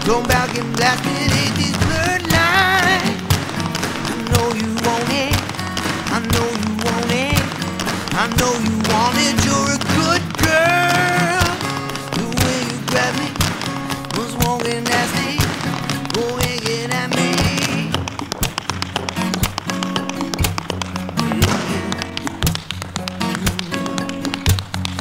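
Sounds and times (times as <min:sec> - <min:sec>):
acoustic pop music: 0:00.0 - 0:25.0
tap shoes on wooden floor: 0:00.0 - 0:25.0.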